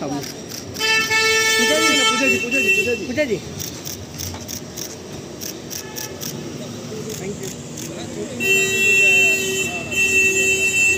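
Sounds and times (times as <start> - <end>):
voices: 0.0 - 4.4, 5.4 - 10.9
street noise: 0.0 - 10.9
vehicle horn blasts: 0.8 - 3.2, 8.4 - 10.9.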